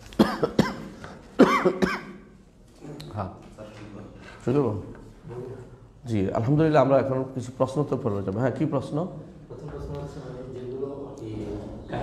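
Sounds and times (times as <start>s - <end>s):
man coughing: 0.2s - 2.2s.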